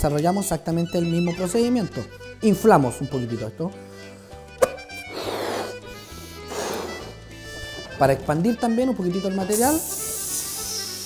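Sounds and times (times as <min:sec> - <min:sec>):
background music with held notes: 0:00.0 - 0:11.0
blowing into a balloon: 0:04.6 - 0:07.8, 0:09.5 - 0:11.0.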